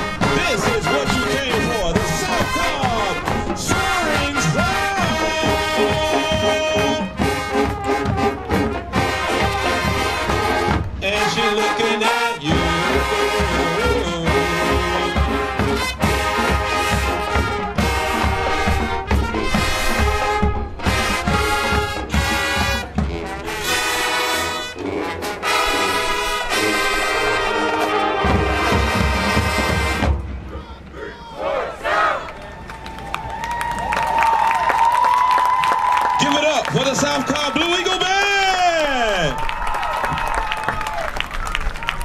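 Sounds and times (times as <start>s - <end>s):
marching band brass and drums: 0.0s - 42.0s
crowd cheering: 27.1s - 42.0s.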